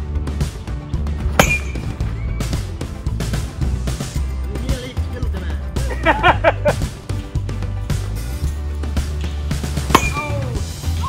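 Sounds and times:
background music with low beat: 0.0 - 11.0
metal bat hitting baseball: 1.4 - 2.1, 9.8 - 10.7.

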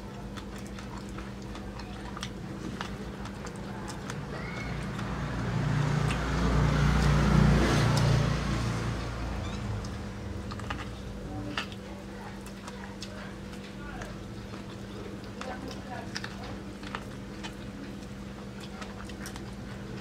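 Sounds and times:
chewing corn on the cob: 0.0 - 20.0
vehicle passing by: 4.6 - 10.2.

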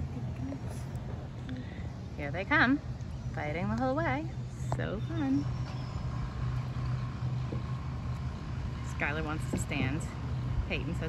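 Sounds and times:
motorboat engine humming: 0.0 - 11.0.

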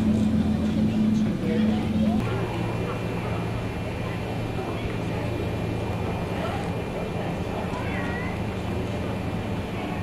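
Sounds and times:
faint voices: 0.0 - 10.0
low droning hum: 0.0 - 10.0.

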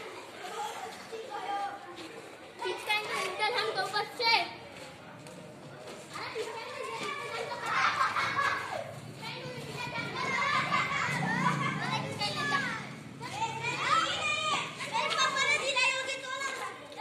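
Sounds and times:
children shouting: 6.2 - 16.9.

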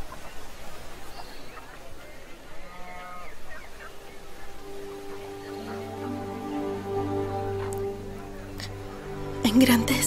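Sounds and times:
soft sustained music chords: 3.2 - 10.0.

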